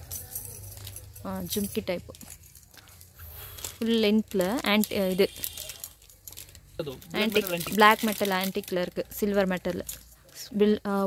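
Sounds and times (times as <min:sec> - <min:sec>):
plastic packets crinkling: 0:00.0 - 0:11.0
woman speaking: 0:01.2 - 0:02.3, 0:03.8 - 0:05.5, 0:07.1 - 0:11.0.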